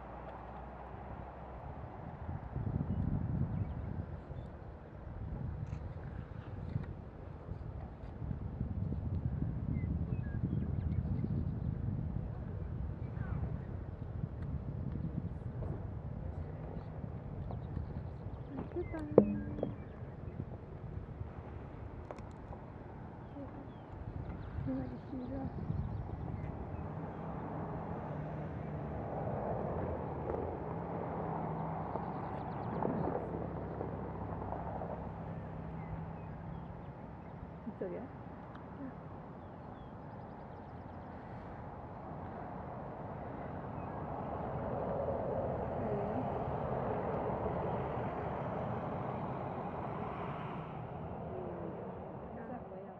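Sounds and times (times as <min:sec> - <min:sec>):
passing road vehicle: 0:12.5 - 0:52.9.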